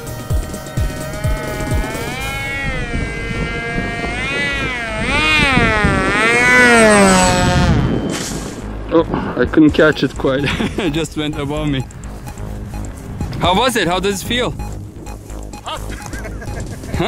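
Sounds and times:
background music with low beat: 0:00.0 - 0:04.4, 0:07.6 - 0:17.0
electric motor whine: 0:00.4 - 0:08.1.

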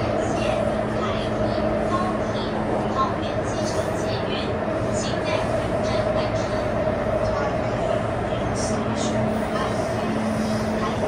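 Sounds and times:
constant train hum: 0:00.0 - 0:11.0
train wheels rumbling on rail: 0:00.0 - 0:11.0.

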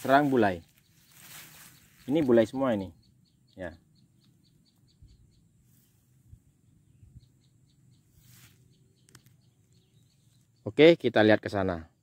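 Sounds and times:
rapid high-pitched chirping: 0:00.0 - 0:05.5.

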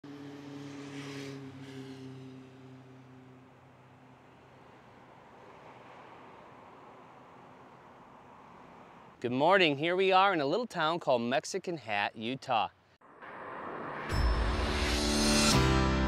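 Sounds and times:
low engine hum: 0:00.0 - 0:09.2.

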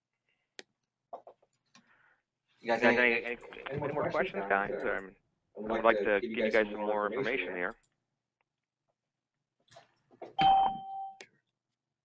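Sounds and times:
electronic chime ding: 0:10.4 - 0:11.2.

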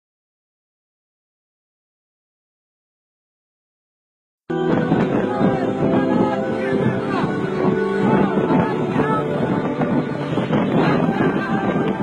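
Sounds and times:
wind buffeting microphone: 0:04.5 - 0:12.0.

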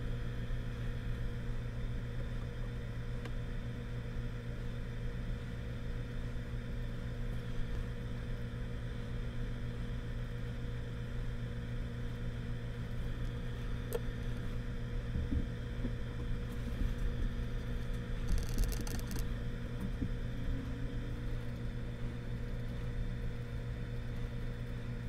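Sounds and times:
low hum: 0:00.0 - 0:25.0
faint higher tone: 0:20.2 - 0:21.4.

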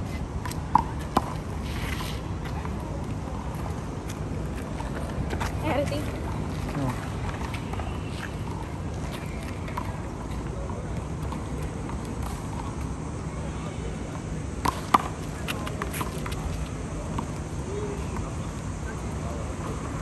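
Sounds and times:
low background noise: 0:00.0 - 0:20.0.

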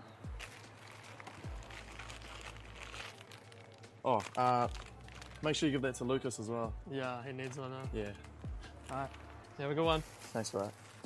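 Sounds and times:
snack packets crinkling: 0:00.3 - 0:06.0, 0:07.4 - 0:11.0.

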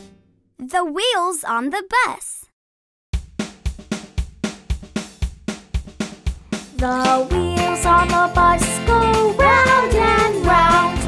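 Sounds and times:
drums playing a steady beat: 0:03.2 - 0:11.0.

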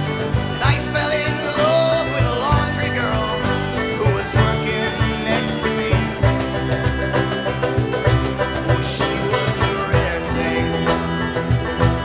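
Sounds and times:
accordion: 0:00.0 - 0:12.0
banjo: 0:00.0 - 0:12.0
strummed acoustic guitars: 0:00.0 - 0:12.0.

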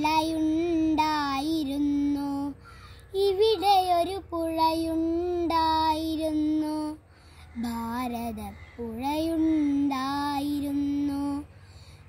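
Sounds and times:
boy singing: 0:00.0 - 0:11.6.

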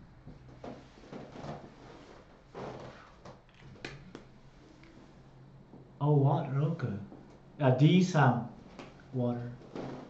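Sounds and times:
low steady room hum: 0:00.0 - 0:10.0
rustling and handling noises: 0:00.3 - 0:05.2, 0:09.6 - 0:10.0.

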